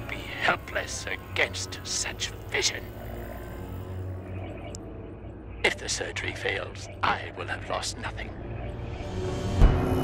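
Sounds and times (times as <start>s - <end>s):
steady low hum: 0.0s - 9.0s
faint background music: 0.0s - 10.0s.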